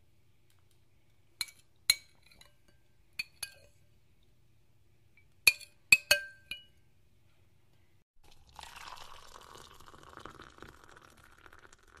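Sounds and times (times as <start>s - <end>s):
tableware clinking: 1.4s - 3.8s, 5.5s - 6.8s.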